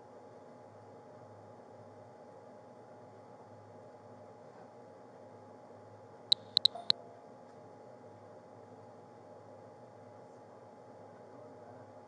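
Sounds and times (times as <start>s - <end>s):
faint steady hum: 0.0s - 12.0s
high-pitched electronic chirps: 6.3s - 6.9s.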